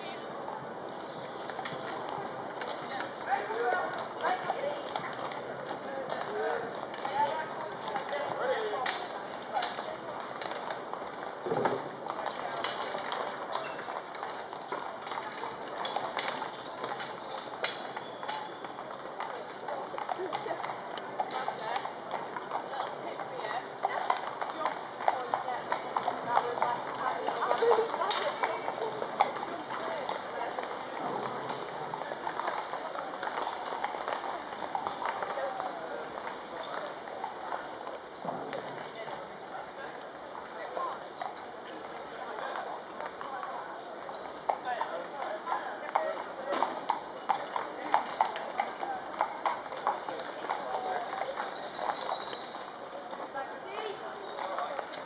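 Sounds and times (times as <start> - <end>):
horse hooves clip-clopping on pavement: 0.0 - 55.0
people's voices: 0.0 - 55.0.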